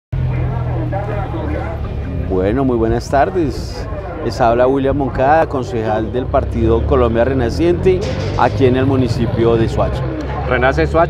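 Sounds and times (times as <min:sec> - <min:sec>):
vehicle engine humming: 0:00.1 - 0:11.0
people talking faintly: 0:00.2 - 0:11.0.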